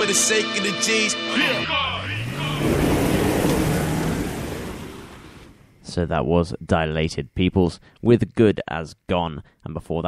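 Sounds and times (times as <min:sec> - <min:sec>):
low drone: 0:01.1 - 0:06.0.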